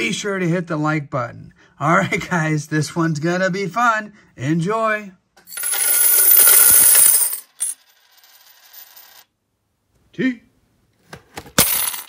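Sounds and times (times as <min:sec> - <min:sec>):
coin clink and ring: 0:05.4 - 0:09.3, 0:11.6 - 0:12.0
metal coins pouring and jingling: 0:05.5 - 0:09.2, 0:11.6 - 0:12.0.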